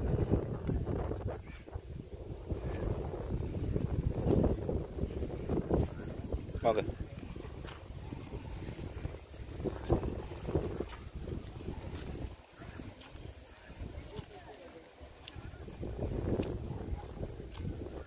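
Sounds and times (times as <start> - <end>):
footsteps on bare rock: 0.8 - 18.0.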